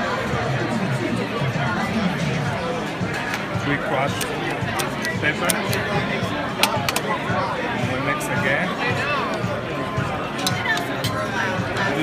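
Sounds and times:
background music: 0.0 - 12.0
chattering voices: 0.0 - 12.0.

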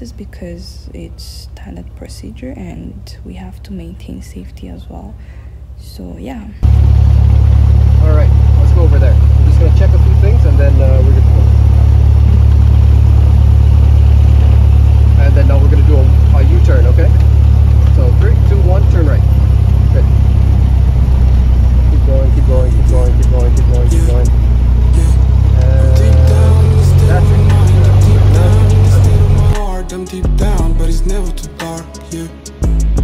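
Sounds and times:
propeller plane engine drone: 6.6 - 30.0.

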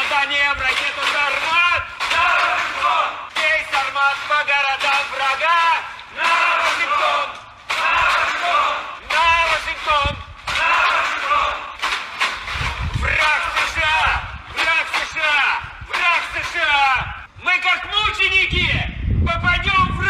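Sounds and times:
crowd chanting in unison: 1.0 - 12.1, 13.0 - 14.7.

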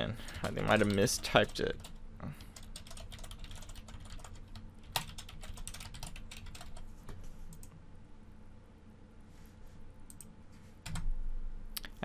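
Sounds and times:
computer keyboard typing: 0.2 - 6.9.

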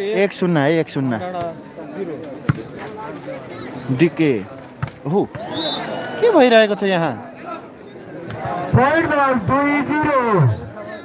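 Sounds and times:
men talking: 0.0 - 11.0.

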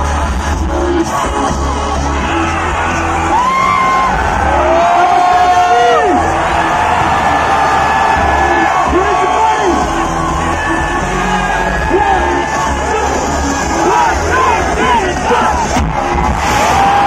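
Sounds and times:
crowd cheering and whooping: 0.0 - 17.0
loud music with heavy bass: 0.0 - 17.0.

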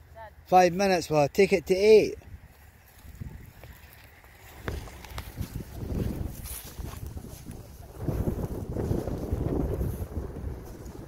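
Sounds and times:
wind buffeting microphone: 2.1 - 11.0.

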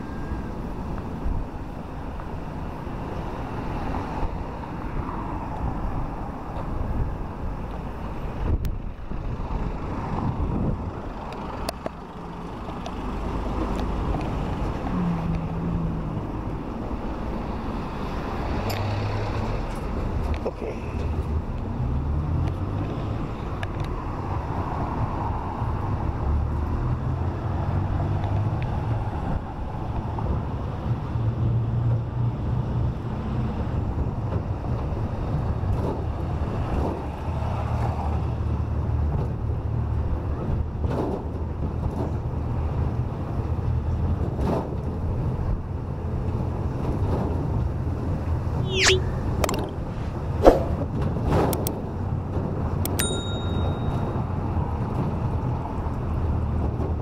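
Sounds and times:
road and wind noise: 0.0 - 57.0
vehicle engine hum: 0.0 - 57.0.

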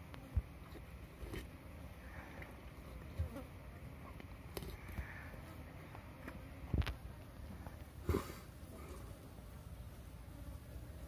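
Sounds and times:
flies buzzing: 0.0 - 11.0.

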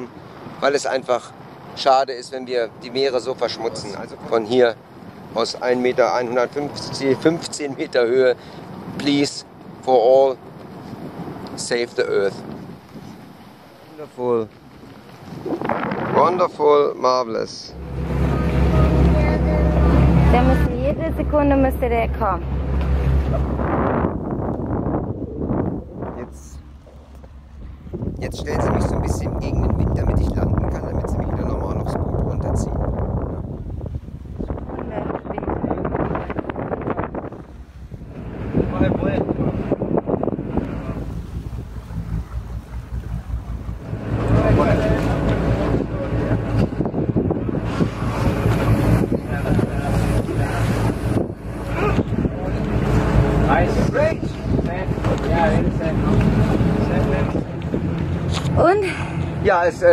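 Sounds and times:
motorboat engine hum: 0.0 - 59.9
wind buffeting microphone: 14.2 - 59.9.

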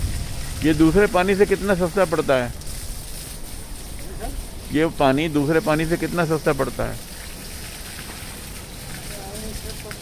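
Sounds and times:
water spraying hiss: 0.0 - 10.0.

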